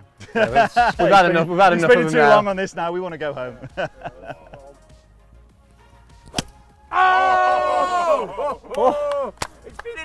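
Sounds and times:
golf club striking ball: 6.2s - 6.7s.

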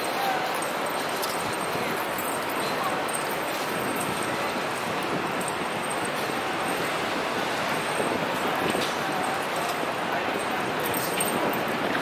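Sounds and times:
faint voices of passers-by: 0.0s - 12.0s
traffic noise: 0.0s - 12.0s.

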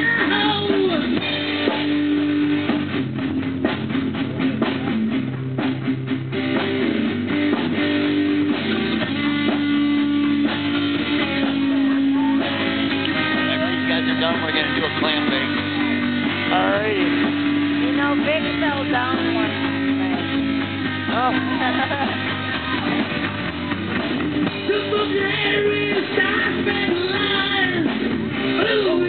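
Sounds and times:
drum kit: 0.0s - 29.0s
electric guitar long notes: 0.0s - 29.0s.

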